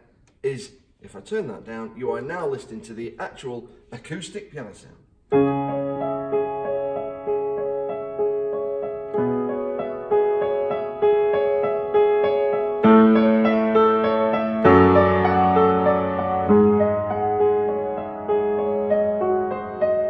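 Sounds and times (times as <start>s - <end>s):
piano chords: 5.3s - 20.0s.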